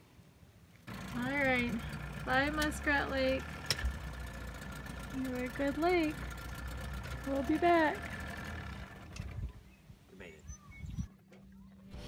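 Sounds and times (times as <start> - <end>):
boat motor idling: 0.9 - 9.7.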